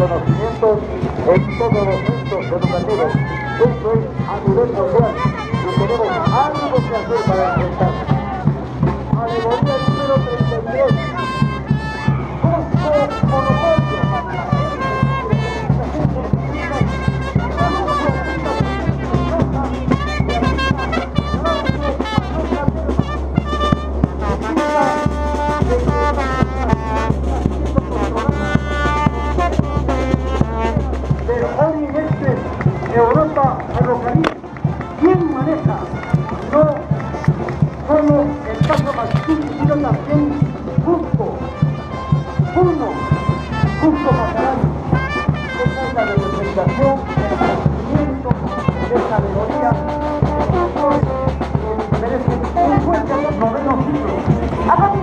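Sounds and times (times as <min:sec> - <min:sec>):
brass band playing parade music: 0:00.0 - 0:55.0.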